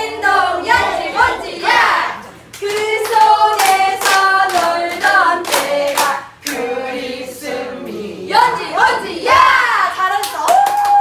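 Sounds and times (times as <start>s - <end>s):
women singing together: 0.0s - 10.1s.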